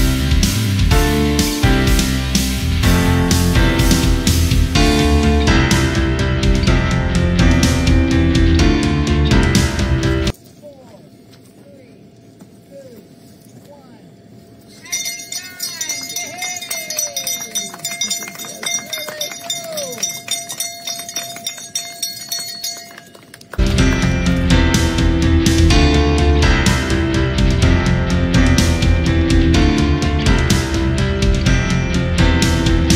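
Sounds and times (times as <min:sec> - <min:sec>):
backing music: 0:00.0 - 0:10.3, 0:15.6 - 0:32.9
people whooping: 0:14.8 - 0:21.6
bell clanging rapidly: 0:14.8 - 0:24.0.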